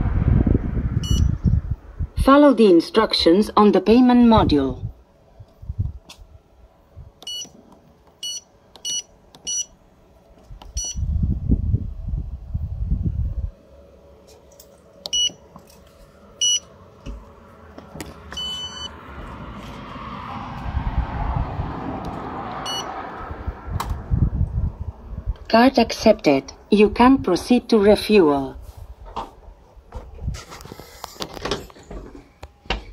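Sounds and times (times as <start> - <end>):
rushing noise: 0.0 - 2.2, 18.8 - 25.3
low rumble: 0.0 - 2.3, 10.6 - 13.9, 18.7 - 27.3
pin pad beeps: 1.0 - 1.3, 7.2 - 7.5, 8.2 - 9.7, 10.7 - 11.0, 15.1 - 15.4, 16.4 - 16.7, 18.4 - 18.9, 22.7 - 22.9.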